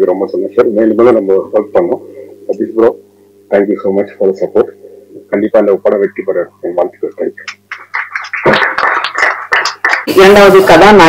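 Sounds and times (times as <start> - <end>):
small audience clapping: 7.4 - 10.4.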